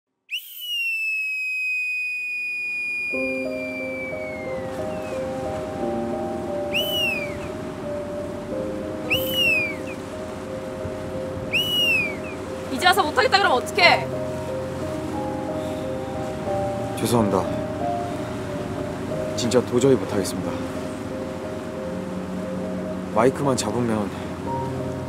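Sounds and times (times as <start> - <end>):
boatswain's pipe calls: 2.8 - 8.0, 8.8 - 10.2, 11.4 - 14.1
slow sustained musical notes: 3.1 - 25.0.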